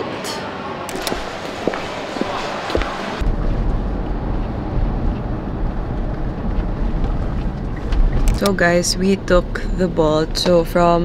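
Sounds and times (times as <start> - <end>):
engine and road noise in car: 0.9 - 10.8.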